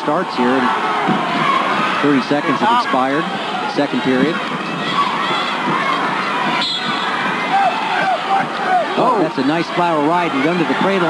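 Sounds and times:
crowd cheering and shouting: 0.0s - 11.0s
single voices yelling: 0.4s - 11.0s.

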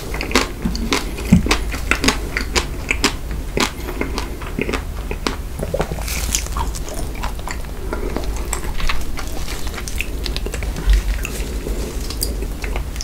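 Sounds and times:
close-miked chewing: 0.0s - 13.0s.

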